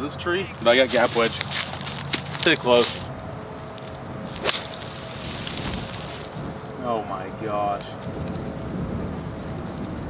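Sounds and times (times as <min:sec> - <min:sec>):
low wind rumble on microphone: 0:00.2 - 0:10.0.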